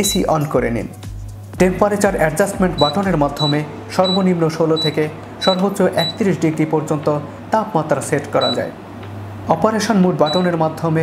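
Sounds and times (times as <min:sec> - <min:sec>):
air conditioner high beeps: 0:00.0 - 0:00.5, 0:01.7 - 0:08.8, 0:09.9 - 0:10.8.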